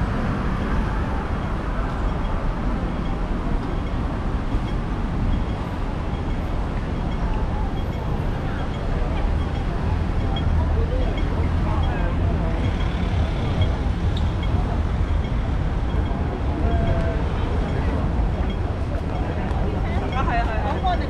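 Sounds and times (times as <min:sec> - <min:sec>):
murmur of pedestrians' voices: 0:00.0 - 0:21.0
traffic rumble: 0:00.0 - 0:21.0.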